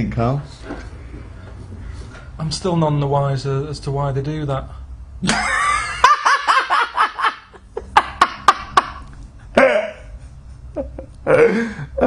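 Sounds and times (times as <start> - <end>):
man laughing hard: 5.2 - 12.0.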